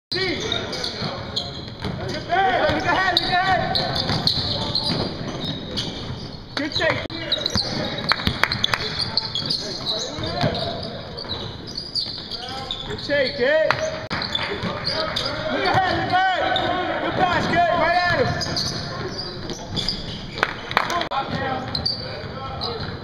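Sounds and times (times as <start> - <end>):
players' voices: 0.1 - 23.0
sneaker squeaks: 0.1 - 23.0
basketball bouncing: 1.0 - 6.2, 7.5 - 10.7.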